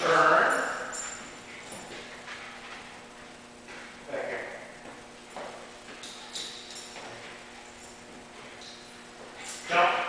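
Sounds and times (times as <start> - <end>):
faint footsteps: 0.0 - 9.8.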